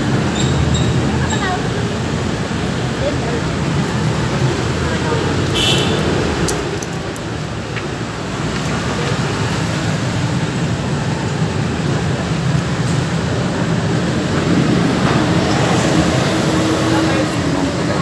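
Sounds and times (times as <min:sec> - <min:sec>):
road traffic noise: 0:00.0 - 0:18.0.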